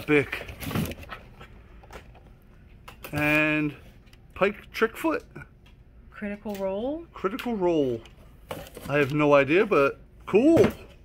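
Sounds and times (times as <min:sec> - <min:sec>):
handling of boxed figures: 0:00.0 - 0:04.3, 0:07.2 - 0:11.0.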